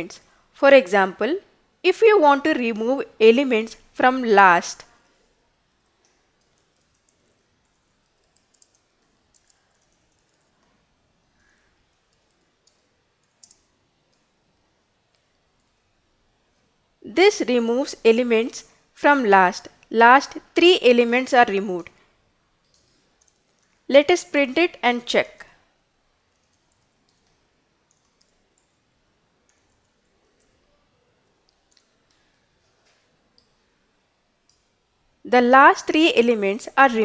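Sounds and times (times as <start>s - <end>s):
soft keyboard clicks: 5.9s - 10.8s, 12.0s - 14.3s, 22.6s - 23.8s, 26.3s - 28.8s, 31.4s - 33.6s.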